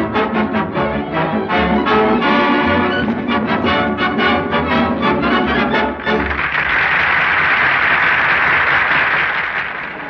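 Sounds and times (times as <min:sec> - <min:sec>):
audience applauding: 0:05.9 - 0:10.0.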